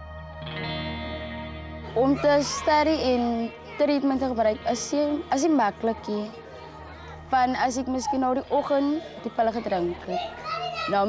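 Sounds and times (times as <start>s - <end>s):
woman speaking: 1.9s - 6.4s, 7.3s - 10.2s.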